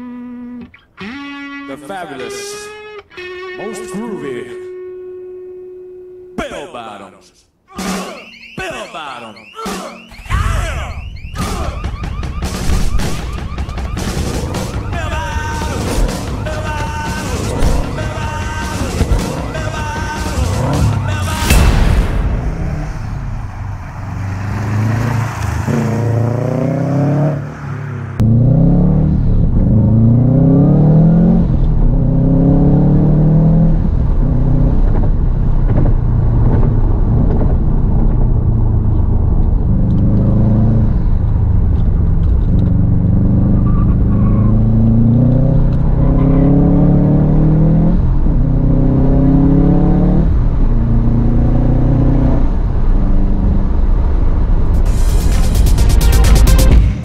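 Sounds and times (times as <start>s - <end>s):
car engine accelerating hard: 14.0s - 21.4s, 22.5s - 57.0s.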